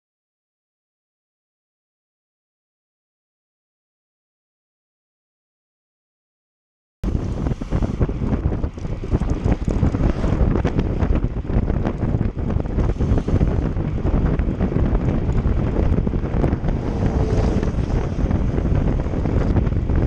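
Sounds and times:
wind buffeting microphone: 7.0s - 20.0s.

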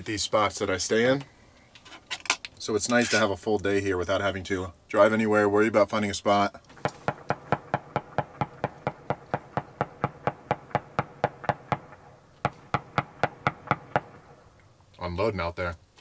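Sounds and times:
fast sharp ticks: 6.6s - 14.7s.

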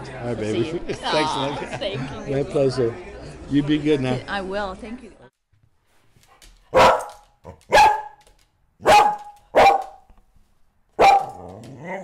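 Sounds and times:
dog barking: 6.7s - 8.2s, 8.8s - 10.1s, 11.0s - 12.0s.

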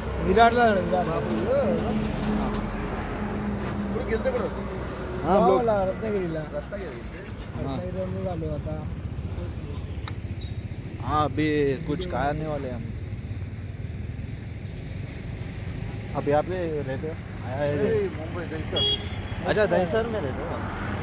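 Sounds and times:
vehicle engine rumbling: 0.0s - 21.0s.

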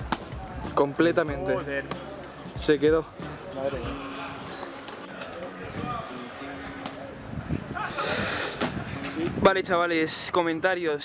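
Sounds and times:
low street background: 0.0s - 11.0s.

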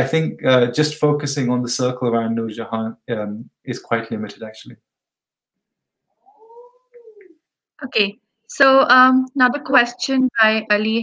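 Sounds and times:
people speaking: 0.0s - 4.8s, 6.4s - 11.0s
cat meowing: 6.2s - 7.4s.

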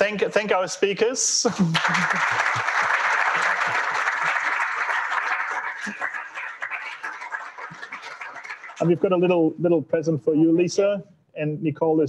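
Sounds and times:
audience applauding: 1.5s - 9.0s.

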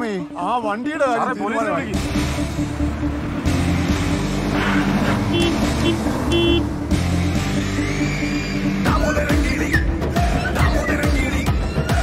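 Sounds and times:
film background score: 0.0s - 12.0s
bus engine running: 1.8s - 8.0s
bus horn honks: 5.2s - 6.7s.

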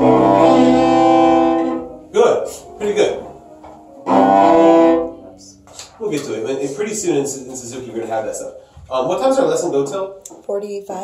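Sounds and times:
cello double stop bowed: 0.0s - 5.5s.

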